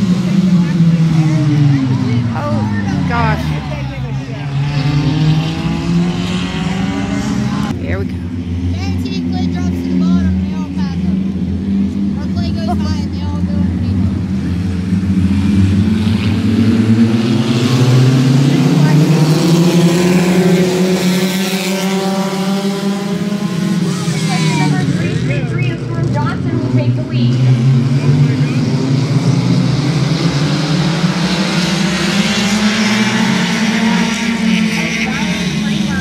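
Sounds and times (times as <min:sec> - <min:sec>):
race car engines revving: 0:00.0 - 0:36.0.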